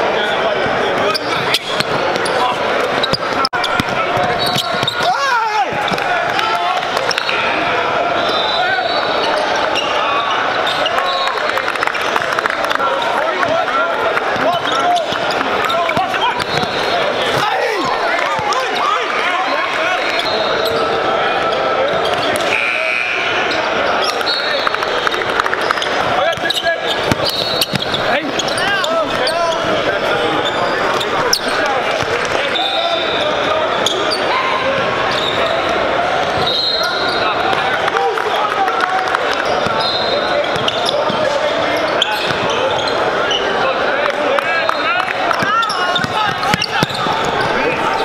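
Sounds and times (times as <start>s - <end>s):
crowd chatter in a hall: 0.0s - 48.0s
sneakers squeaking: 0.2s - 6.2s, 6.9s - 11.4s, 14.3s - 37.6s, 39.2s - 43.8s, 44.6s - 48.0s.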